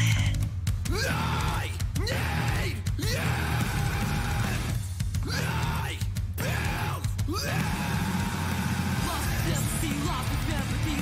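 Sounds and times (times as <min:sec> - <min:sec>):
hardcore rock music: 0:00.0 - 0:11.0.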